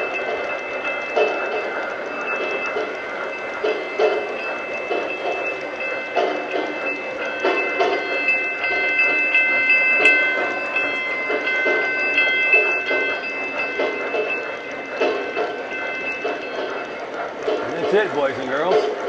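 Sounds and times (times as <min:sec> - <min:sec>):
model train wheels clattering: 0:00.0 - 0:19.0
steady high ringing tone: 0:00.0 - 0:19.0.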